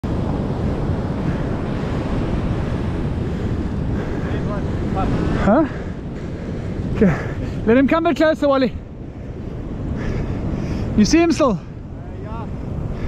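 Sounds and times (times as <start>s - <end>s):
surf on a beach: 0.0s - 13.0s
wind buffeting microphone: 0.0s - 13.0s.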